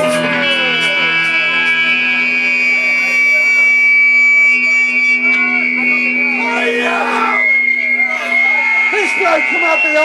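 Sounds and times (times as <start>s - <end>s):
faint voices: 0.0s - 10.0s
guitar feedback whine: 0.0s - 10.0s
low amp drone: 0.0s - 10.0s.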